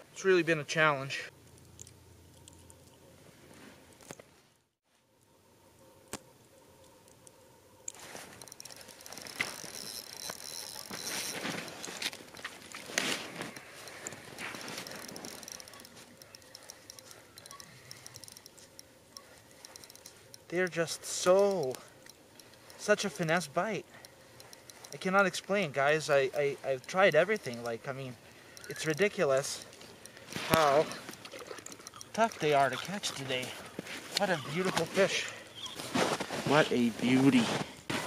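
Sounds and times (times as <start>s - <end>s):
fishing rod and reel handling: 1.3s - 4.3s, 6.8s - 36.6s
small reel clicks: 6.8s - 35.6s.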